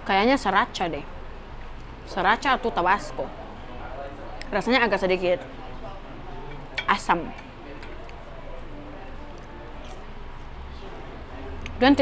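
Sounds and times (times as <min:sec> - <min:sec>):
faint voices: 0:02.6 - 0:12.0.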